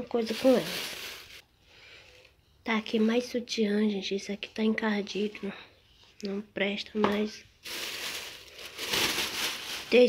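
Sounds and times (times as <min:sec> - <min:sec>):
plastic bag rustling and crinkling: 0:00.0 - 0:01.4, 0:07.6 - 0:10.0.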